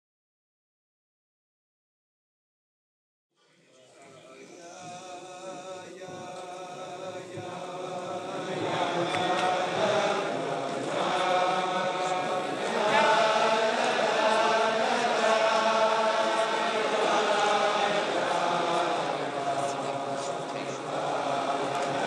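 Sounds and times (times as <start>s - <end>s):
crowd of men singing: 4.3s - 22.0s.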